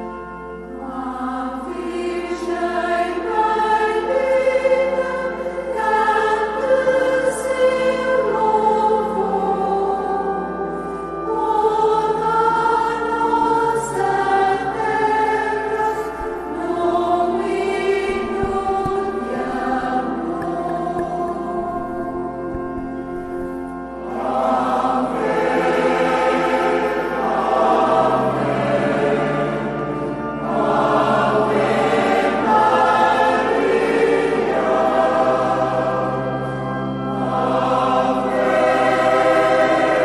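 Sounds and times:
choir singing sacred music: 0.0s - 40.0s.

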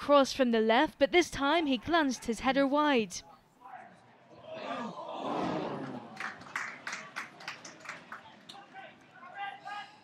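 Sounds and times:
shouts: 3.7s - 6.1s
crowd voices: 4.0s - 10.0s
sharp claps: 5.8s - 9.1s.

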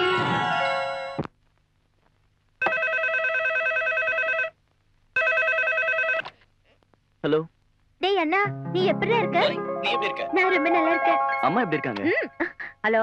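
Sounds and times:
telephone trilling ring: 2.6s - 4.5s, 5.2s - 6.2s
film song: 8.5s - 12.6s.

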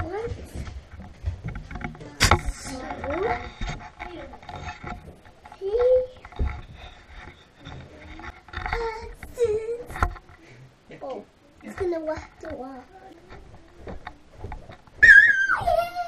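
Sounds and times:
child babbling: 15.5s - 16.0s.

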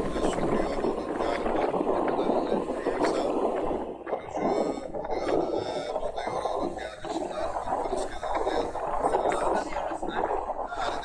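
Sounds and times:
rushing wind: 0.0s - 11.0s
wind buffeting microphone: 0.0s - 11.0s.

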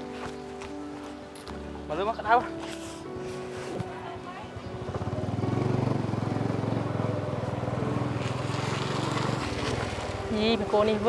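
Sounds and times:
small motorcycle engine pulling away: 4.6s - 11.0s.

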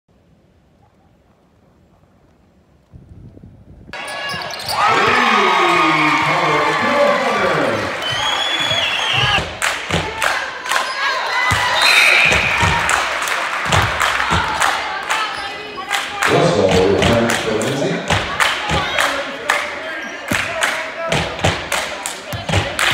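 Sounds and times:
crowd voices in gym: 3.9s - 22.9s.

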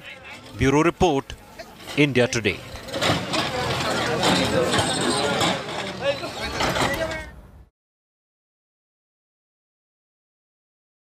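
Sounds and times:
people talking: 0.0s - 2.6s, 3.3s - 7.4s
heavy engine running: 1.6s - 7.3s.

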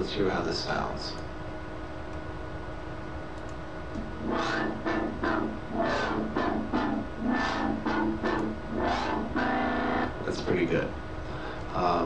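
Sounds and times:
faint steady hum: 0.0s - 12.0s
synth bass with filter sweeps: 4.1s - 10.2s.

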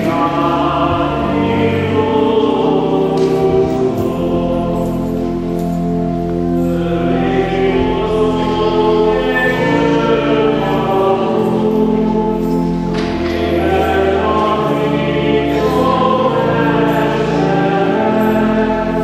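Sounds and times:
congregation singing a hymn: 0.0s - 19.0s
sustained organ chords: 0.0s - 19.0s.

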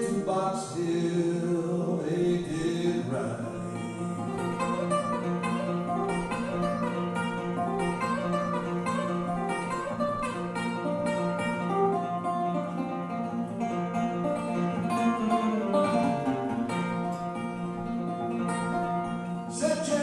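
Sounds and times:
acoustic guitar picking: 0.0s - 20.0s
cello: 0.0s - 20.0s.

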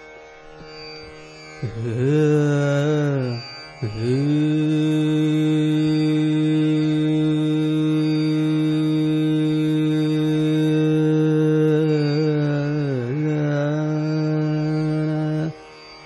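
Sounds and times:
tanpura drone: 0.0s - 16.0s
man singing classical vocal: 1.6s - 15.6s.

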